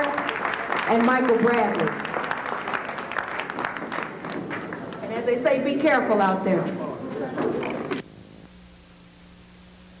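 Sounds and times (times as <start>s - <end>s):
faint recording hiss: 0.0s - 10.0s
low steady hum: 0.0s - 10.0s.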